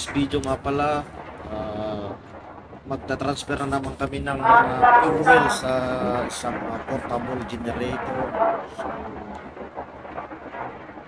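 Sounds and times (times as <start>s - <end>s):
low uneven rumbling: 0.0s - 11.0s.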